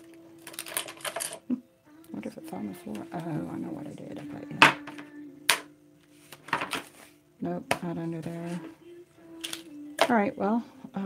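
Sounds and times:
tools clinking and knocking: 0.5s - 1.4s.

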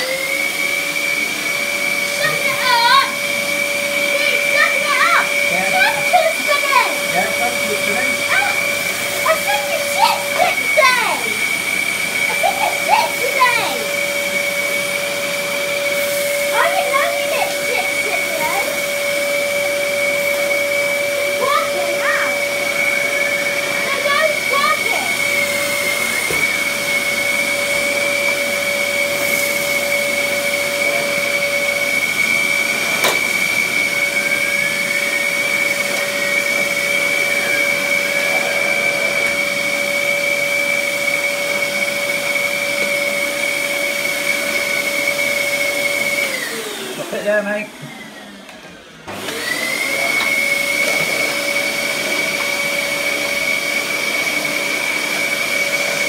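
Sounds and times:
vacuum cleaner running: 0.0s - 56.0s.

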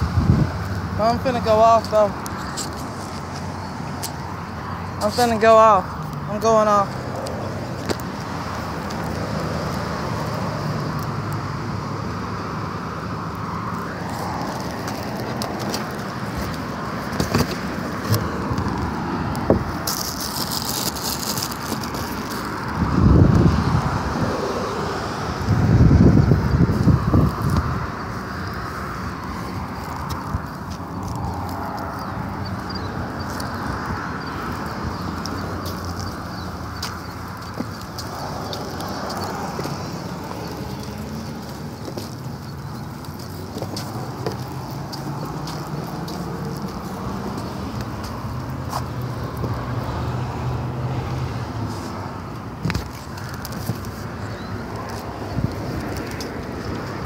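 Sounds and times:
traffic noise: 0.0s - 57.0s.

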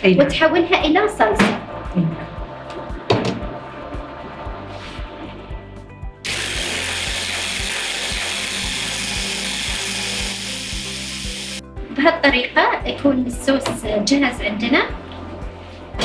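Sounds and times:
electric hand blender running: 6.2s - 11.6s.

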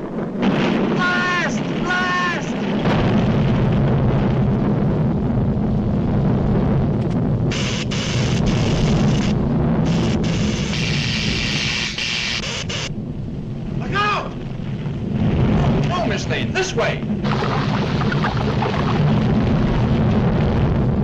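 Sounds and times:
low volcano rumble: 0.0s - 21.0s
crackling electrical sparking: 7.0s - 12.9s, 17.2s - 21.0s.

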